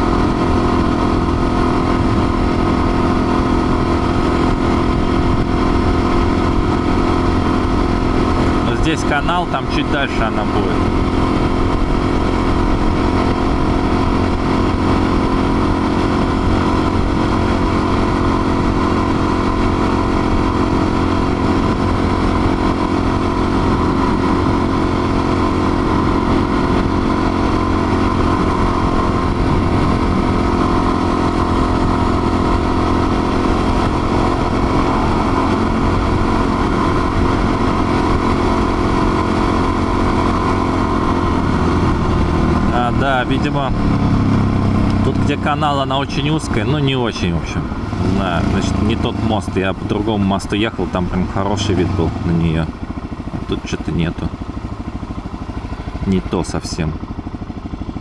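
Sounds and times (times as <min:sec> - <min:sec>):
motorcycle engine cruising: 0:00.0 - 0:58.0.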